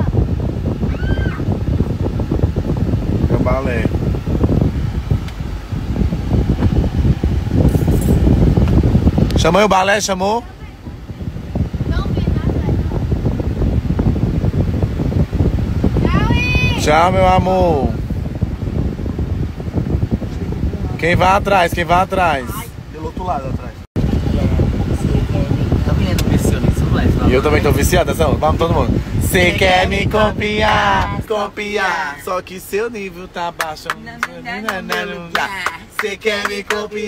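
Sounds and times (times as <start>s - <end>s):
air-conditioning fan rumble: 0.0s - 37.0s
wind buffeting microphone: 0.0s - 37.0s.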